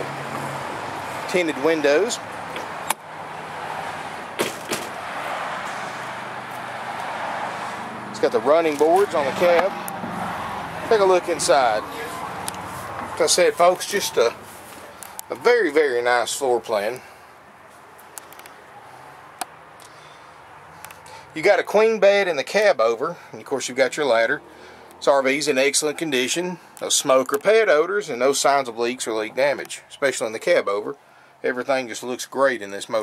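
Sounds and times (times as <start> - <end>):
passing cars hissing: 0.0 - 15.3.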